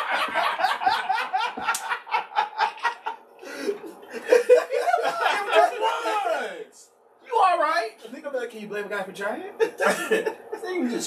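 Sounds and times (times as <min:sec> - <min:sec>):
men laughing: 0:00.0 - 0:06.6, 0:09.6 - 0:11.0
quiet chuckling: 0:09.6 - 0:11.0.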